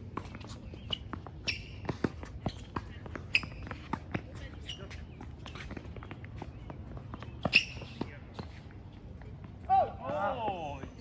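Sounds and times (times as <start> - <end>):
sneaker squeak: 0.2 - 8.7.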